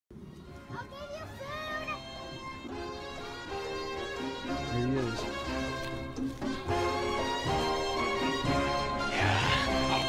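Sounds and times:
young children talking and calling: 0.2 - 7.2.

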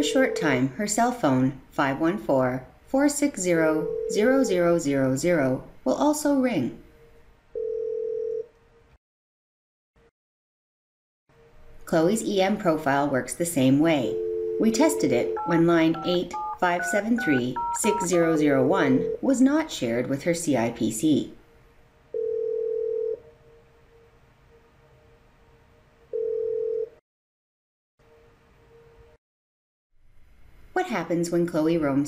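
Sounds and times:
telephone ringback tone: 3.8 - 4.2, 7.6 - 8.5, 14.1 - 19.2, 22.2 - 23.2, 26.1 - 27.0.

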